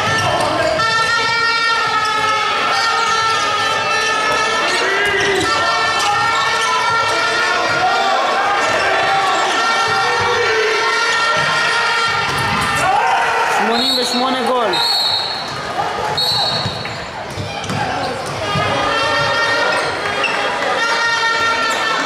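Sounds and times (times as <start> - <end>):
people shouting: 0.0 - 16.7
voices echoing in hall: 0.0 - 22.0
referee's whistle blasts: 13.6 - 15.5, 16.1 - 17.0
ball bouncing on wooden floor: 16.5 - 19.4.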